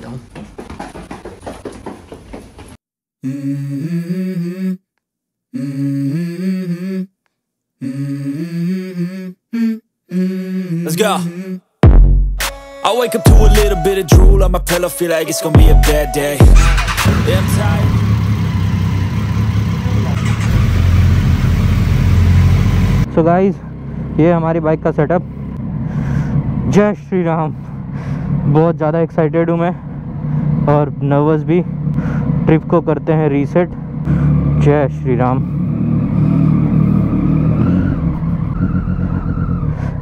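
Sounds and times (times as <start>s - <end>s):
motorcycle engines idling: 16.5s - 28.5s.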